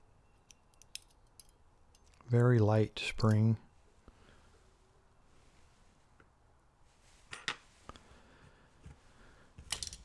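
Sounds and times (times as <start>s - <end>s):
metal tweezers clicking on pins: 0.4s - 2.4s.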